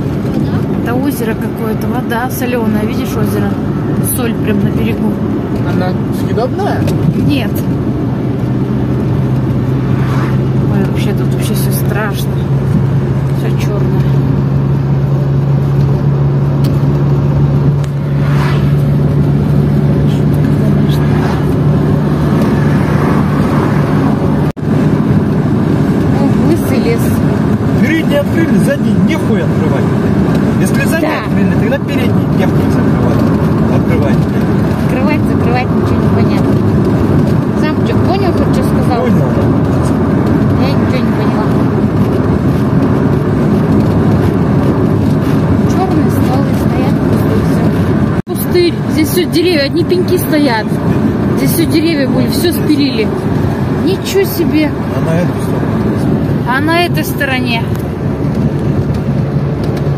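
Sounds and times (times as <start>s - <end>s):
car engine and tyre drone: 0.0s - 59.9s
road and wind noise: 0.0s - 59.9s.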